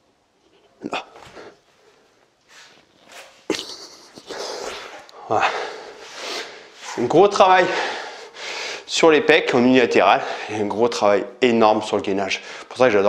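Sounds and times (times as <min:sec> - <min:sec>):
man breathing hard: 0:04.2 - 0:06.8, 0:07.6 - 0:08.9.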